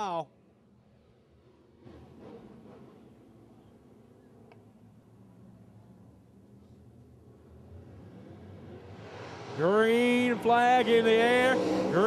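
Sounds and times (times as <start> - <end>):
distant race cars droning: 5.8 - 12.0.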